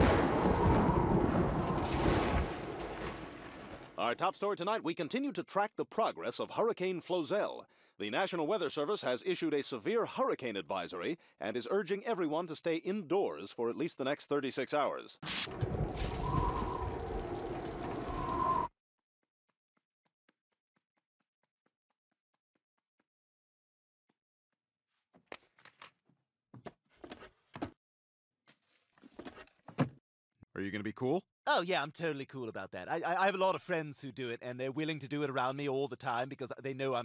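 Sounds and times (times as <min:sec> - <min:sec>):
rain: 0:00.0 - 0:04.0, 0:15.3 - 0:18.7
wind: 0:15.3 - 0:18.7
low rumble: 0:15.5 - 0:18.7
thin whistling tone: 0:16.0 - 0:18.7.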